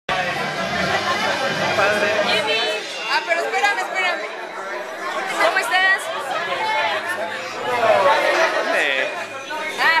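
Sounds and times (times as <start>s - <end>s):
people chattering: 0.1s - 10.0s.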